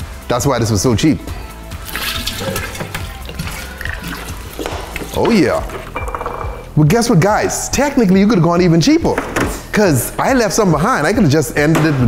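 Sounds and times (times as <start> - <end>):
liquid pouring into dispenser: 1.8 - 6.0.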